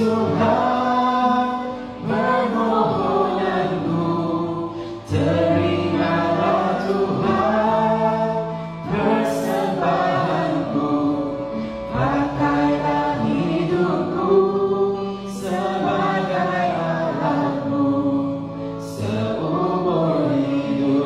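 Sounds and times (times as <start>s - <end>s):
backing track: 0.0s - 21.0s
woman singing worship song: 0.0s - 21.0s.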